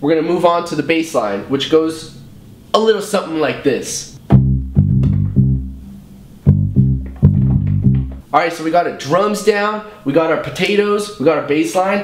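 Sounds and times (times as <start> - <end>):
low plucked bass notes: 4.2 - 8.2.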